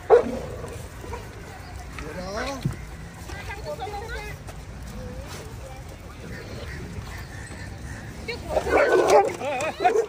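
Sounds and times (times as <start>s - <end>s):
dogs growling and barking: 0.0s - 1.4s, 8.5s - 10.0s
dogs yelping: 6.3s - 10.0s.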